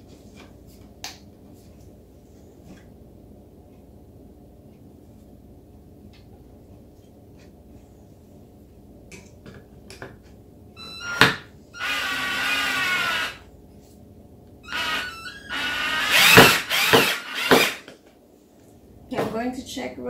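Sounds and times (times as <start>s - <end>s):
cordless drill motor whine: 10.8s - 13.5s, 14.6s - 17.8s.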